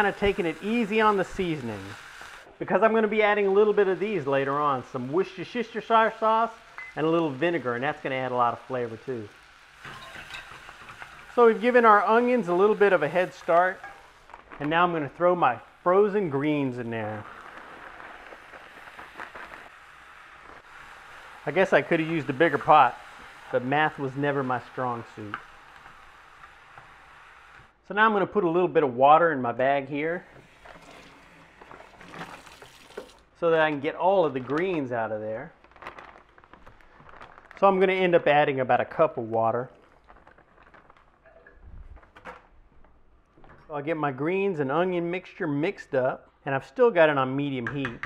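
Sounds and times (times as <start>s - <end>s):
greens sizzling in oil: 0.0s - 27.8s, 30.2s - 33.2s.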